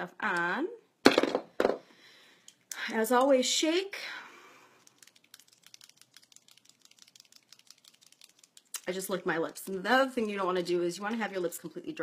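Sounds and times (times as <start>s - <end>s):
lip colour tube rattling: 4.8s - 9.7s.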